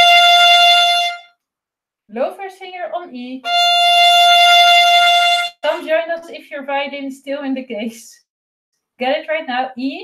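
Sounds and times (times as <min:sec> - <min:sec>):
bowed violin note: 0:00.0 - 0:01.3, 0:03.4 - 0:06.0.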